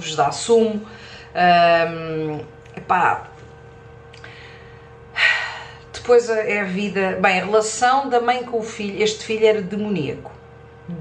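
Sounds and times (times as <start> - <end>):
faint steady hum: 0.0 - 11.0
woman breathing in: 4.2 - 5.9.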